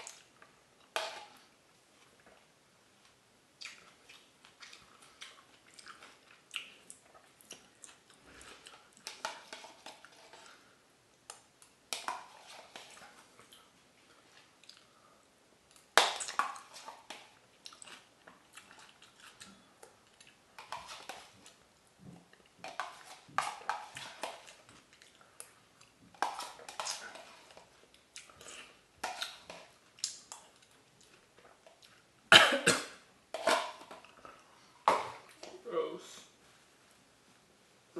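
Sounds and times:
person chewing: 0:03.6 - 0:15.0, 0:15.7 - 0:21.6, 0:22.2 - 0:32.1.

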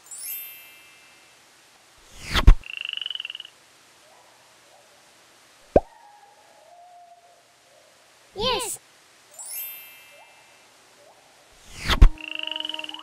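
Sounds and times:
faint held tone sinking in pitch: 0:12.1 - 0:13.0.

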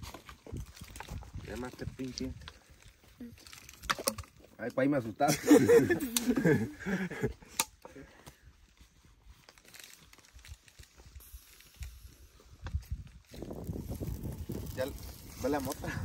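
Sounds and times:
burning branches crackling: 0:00.0 - 0:04.5, 0:05.3 - 0:16.0
person laughing: 0:05.3 - 0:07.5.

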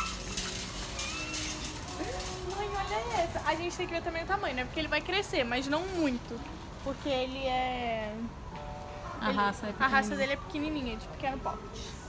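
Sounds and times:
faint shop background noise: 0:00.0 - 0:12.0.

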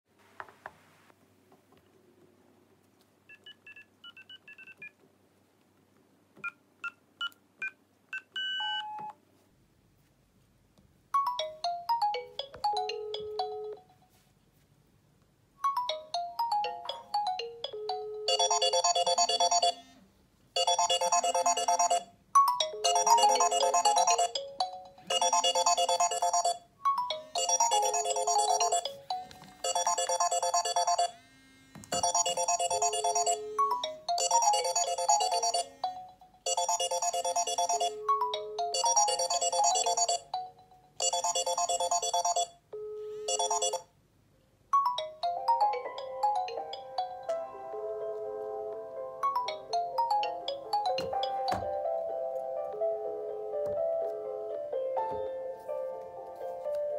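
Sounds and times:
phone ringtone melody: 0:11.2 - 0:14.0, 0:15.6 - 0:19.9, 0:20.6 - 0:31.2, 0:31.9 - 0:43.9, 0:44.8 - 0:48.2, 0:49.2 - 0:52.1
bell-like melody: 0:20.6 - 0:31.1, 0:32.0 - 0:42.5, 0:49.2 - 0:52.1.

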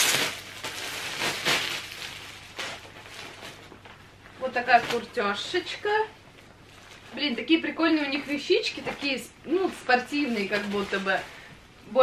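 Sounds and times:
plastic packaging crinkling: 0:00.0 - 0:11.6.

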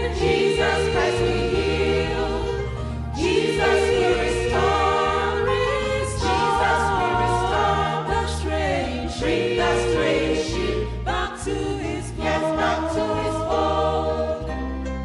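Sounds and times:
choir singing gospel: 0:00.0 - 0:15.0.

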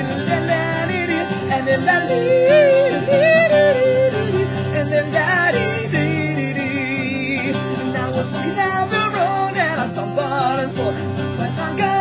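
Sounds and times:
man singing wavering notes: 0:00.0 - 0:07.5
strummed acoustic guitar: 0:00.0 - 0:12.0.

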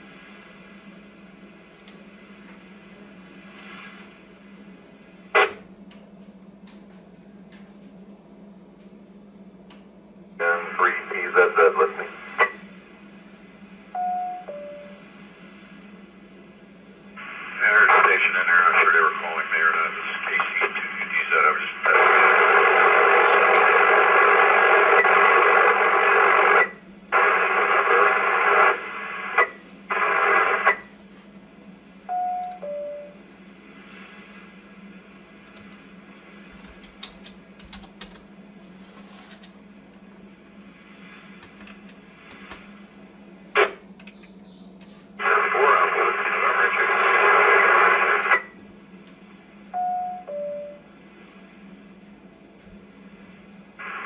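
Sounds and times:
static hiss: 0:00.0 - 0:04.4, 0:10.4 - 0:12.8, 0:17.1 - 0:30.9, 0:33.5 - 0:36.9, 0:45.1 - 0:48.6, 0:53.0 - 0:54.0
garbled radio transmissions: 0:05.4 - 0:05.6, 0:10.4 - 0:12.6, 0:17.2 - 0:30.9, 0:43.6 - 0:43.9, 0:45.2 - 0:48.6.

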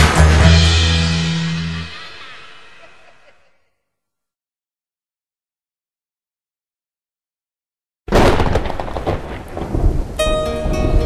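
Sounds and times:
reggae music: 0:00.0 - 0:03.3, 0:10.2 - 0:11.0
thunder and rain sound effect: 0:08.1 - 0:11.0.

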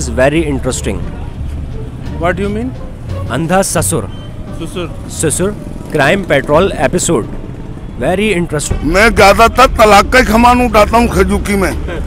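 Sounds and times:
street background rumble: 0:00.0 - 0:12.0
man speaking: 0:08.0 - 0:12.0.

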